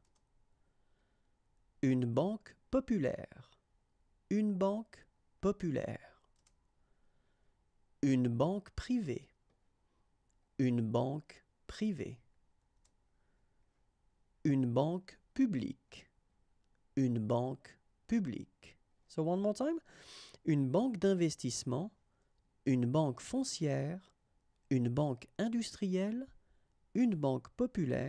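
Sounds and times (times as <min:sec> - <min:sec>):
computer mouse click: 0:00.0 - 0:00.2, 0:06.2 - 0:06.6
man talking: 0:01.8 - 0:03.6, 0:04.3 - 0:06.2, 0:08.0 - 0:09.4, 0:10.6 - 0:12.3, 0:14.4 - 0:16.1, 0:17.0 - 0:22.0, 0:22.6 - 0:24.1, 0:24.7 - 0:28.0.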